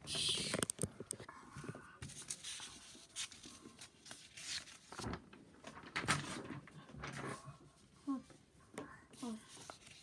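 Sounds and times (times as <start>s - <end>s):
paper rustling and sliding: 2.0s - 7.5s, 9.4s - 10.0s.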